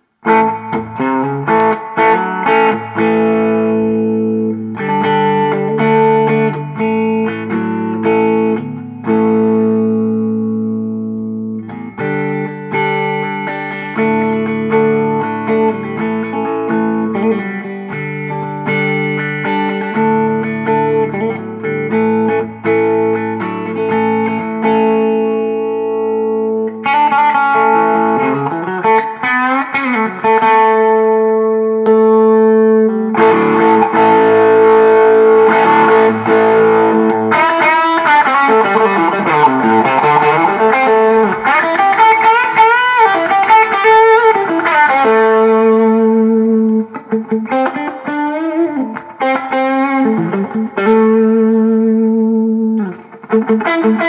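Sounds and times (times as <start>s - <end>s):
electric guitar playing: 0.0s - 54.0s.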